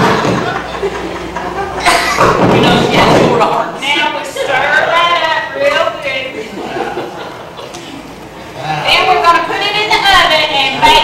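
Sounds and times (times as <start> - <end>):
voices: 0.1 - 11.0
thud: 2.2 - 3.5.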